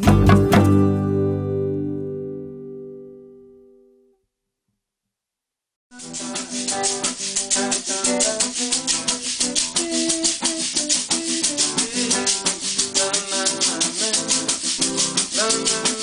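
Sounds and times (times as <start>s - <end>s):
acoustic guitar melody: 0.0s - 4.0s, 5.9s - 16.0s
maraca rhythm: 5.9s - 16.0s.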